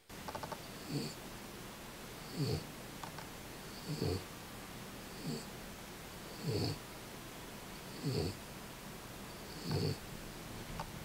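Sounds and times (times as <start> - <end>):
dog snoring: 0.7 - 1.2, 2.2 - 2.7, 3.7 - 4.3, 5.1 - 5.5, 6.2 - 6.8, 7.8 - 8.4, 9.3 - 10.0.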